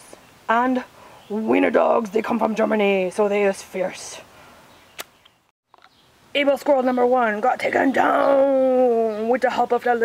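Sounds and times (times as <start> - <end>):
faint background noise: 0.0 - 10.0
sharp click: 5.0 - 6.0.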